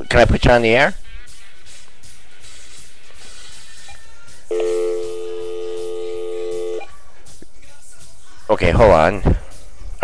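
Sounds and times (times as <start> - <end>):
telephone multi-pitch electronic tone: 4.5 - 6.9.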